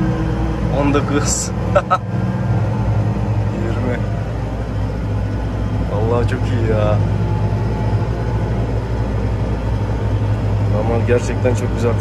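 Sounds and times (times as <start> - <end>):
tractor engine low hum: 0.0 - 12.0.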